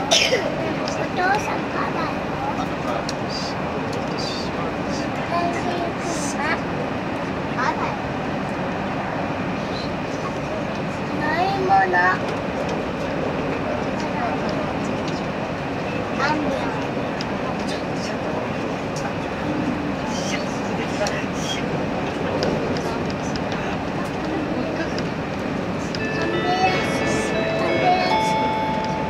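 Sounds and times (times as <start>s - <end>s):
passengers' voices: 0.0s - 29.0s
train running on rails: 0.0s - 29.0s.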